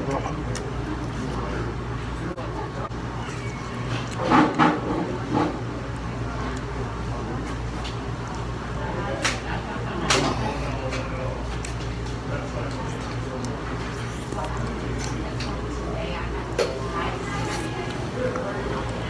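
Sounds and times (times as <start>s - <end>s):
chewing and lip smacks: 0.0s - 1.7s
murmur of voices: 0.0s - 19.0s.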